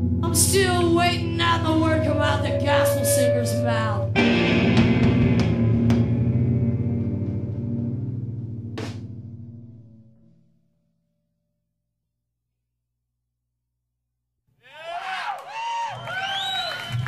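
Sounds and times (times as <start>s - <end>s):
person singing: 0.2s - 4.2s
noise-rock band playing live: 4.1s - 9.6s.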